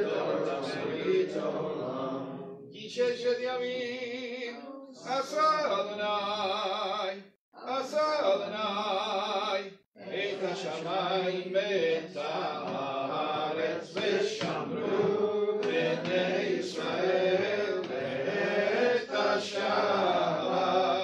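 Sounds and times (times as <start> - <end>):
men chanting a prayer: 0.0 - 21.0.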